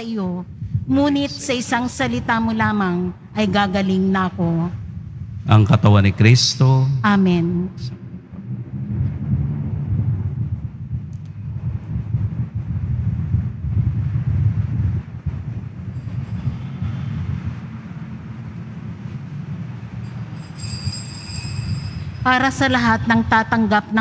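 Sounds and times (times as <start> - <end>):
low church room rumble: 0.0 - 24.0.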